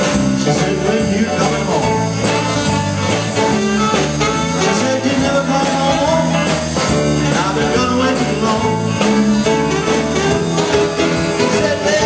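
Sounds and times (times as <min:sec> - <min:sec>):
live blues band: 0:00.0 - 0:12.0.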